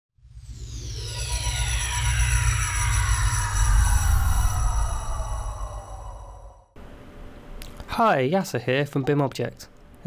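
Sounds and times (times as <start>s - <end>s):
deep rumble: 0.2s - 6.8s
high tones gliding downward: 0.2s - 6.8s.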